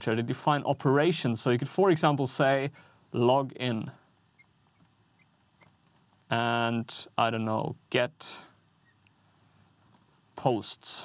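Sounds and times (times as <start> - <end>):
marker squeaking on glass: 4.4 - 5.7.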